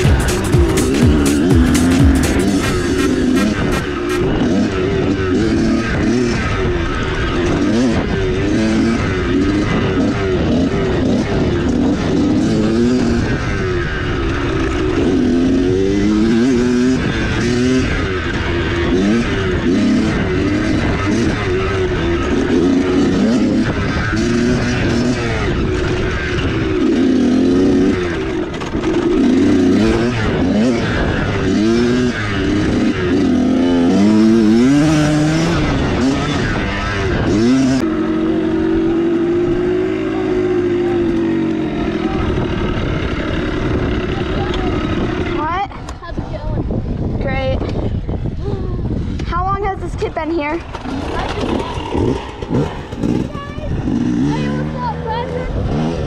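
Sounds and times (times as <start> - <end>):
dirt bike engine revving: 0.0 - 56.0
wind and trail noise: 0.0 - 56.0.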